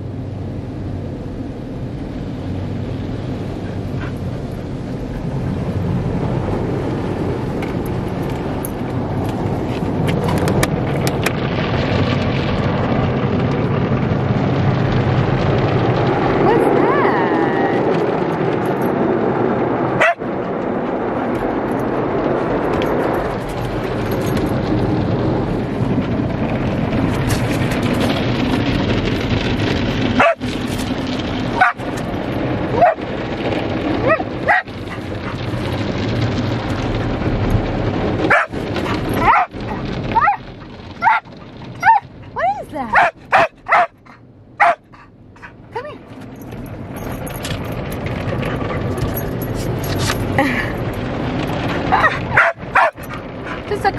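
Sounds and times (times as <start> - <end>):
car wash water spray: 0.0 - 53.9
dog whining and yipping: 30.2 - 30.5, 32.7 - 33.0, 34.0 - 35.5, 38.3 - 45.6, 51.8 - 53.7.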